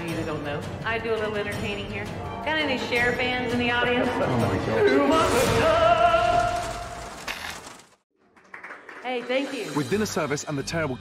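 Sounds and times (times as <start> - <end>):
scattered clapping: 8.2 - 9.5.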